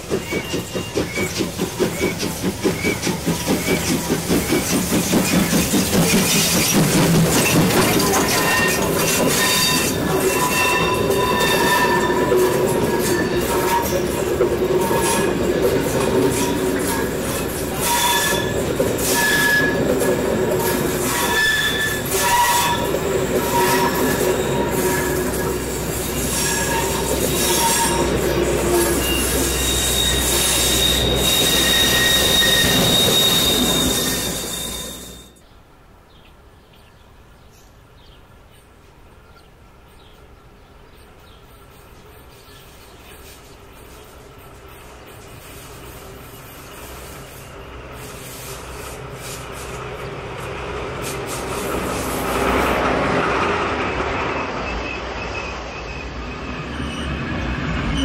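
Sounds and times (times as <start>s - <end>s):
steam locomotive exhaust beats: 0.0s - 35.4s
train wheels squealing: 0.0s - 35.4s, 41.2s - 58.0s
wheels clicking over rail joints: 0.0s - 35.4s.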